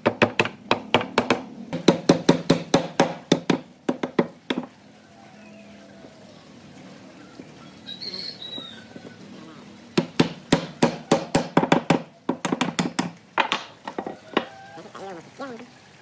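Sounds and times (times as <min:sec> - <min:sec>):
mallet knocking wooden spindles: 0:10.0 - 0:14.6.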